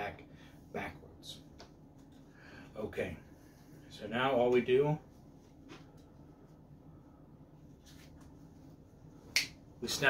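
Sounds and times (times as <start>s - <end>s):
finger snap: 9.3s - 9.6s.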